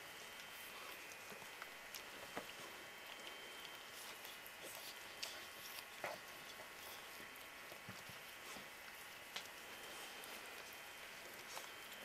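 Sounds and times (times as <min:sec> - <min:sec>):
low steady hiss: 0:00.0 - 0:12.0
puppies suckling wet clicks: 0:00.0 - 0:12.0.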